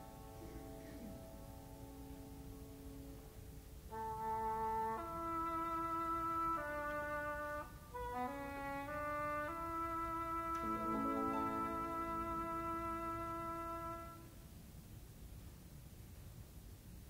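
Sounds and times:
orchestra playing sustained chords: 0.0 - 14.4.

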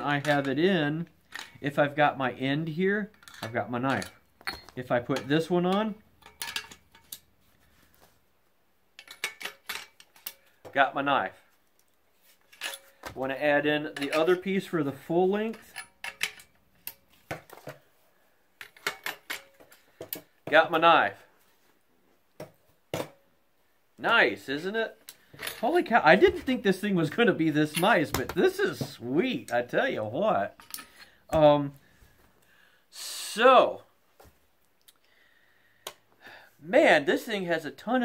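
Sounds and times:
metal shovel handle clinking: 3.1 - 7.2, 9.0 - 10.4, 15.5 - 17.0.

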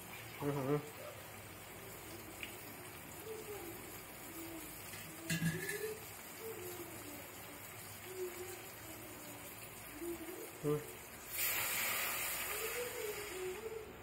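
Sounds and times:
vegetables sizzling in oil: 0.0 - 14.0.

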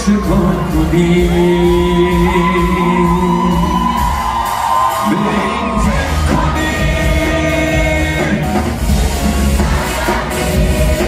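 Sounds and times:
crowd whooping and yelling: 0.0 - 10.3
live pop band playing: 0.0 - 11.0.

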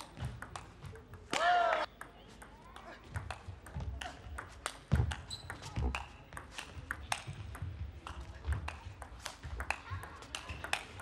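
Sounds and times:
ping pong ball hitting rackets: 0.1 - 1.2, 1.8 - 11.0
ping pong ball bouncing on table: 1.9 - 11.0.

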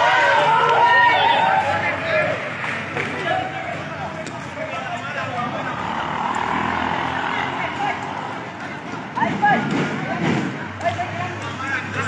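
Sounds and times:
vehicle passing on street: 0.0 - 12.0
men's voices: 0.2 - 12.0.

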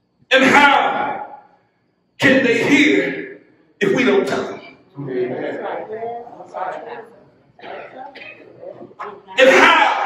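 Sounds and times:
man coughing and clearing throat: 7.6 - 8.6.

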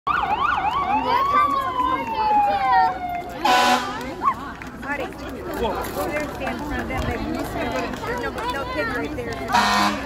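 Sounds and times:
emergency vehicle siren: 0.1 - 4.1
loud horn blast: 3.4 - 4.0, 9.5 - 10.0.

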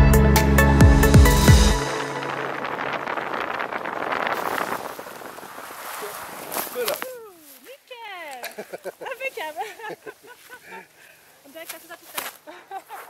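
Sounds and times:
wind rushing over microphone: 1.0 - 7.0.

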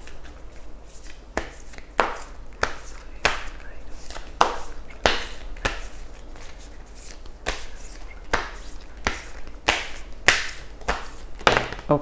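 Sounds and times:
cards being shuffled: 0.0 - 11.9
sharp card slaps: 1.4 - 5.9, 7.4 - 7.7, 8.3 - 11.9.

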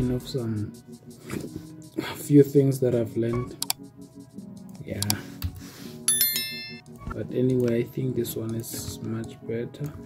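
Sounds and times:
soft background music: 0.0 - 10.0
click: 3.6 - 3.8
bell-like ding: 6.1 - 6.9.

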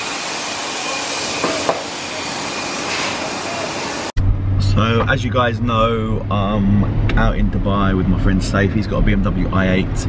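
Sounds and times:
machine hiss with high whine: 0.0 - 4.1.

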